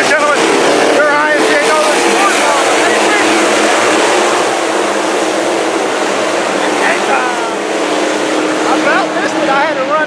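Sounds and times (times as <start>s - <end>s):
race car engines roaring: 0.0s - 10.0s.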